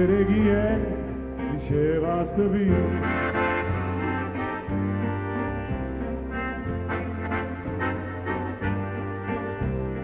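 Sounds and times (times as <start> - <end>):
live band music: 0.0 - 10.0
piano accordion playing: 0.0 - 10.0
steady bass: 0.0 - 10.0.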